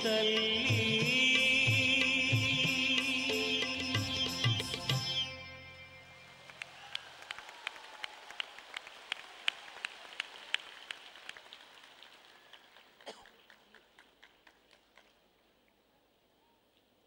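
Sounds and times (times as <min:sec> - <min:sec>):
audience applause: 0:06.3 - 0:15.2.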